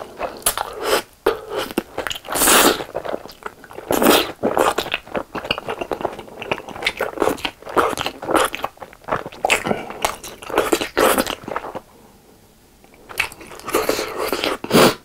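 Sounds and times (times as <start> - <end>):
wet mouth sounds: 0.2 - 11.9, 12.9 - 15.0.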